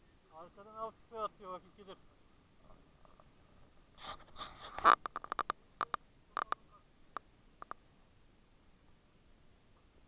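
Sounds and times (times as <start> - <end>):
short rustle: 2.6 - 5.5
sharp clicks and knocks: 4.8 - 6.6.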